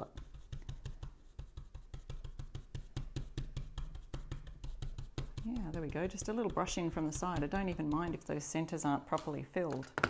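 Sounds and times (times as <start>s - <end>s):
stencil brush tapping: 0.0s - 8.4s.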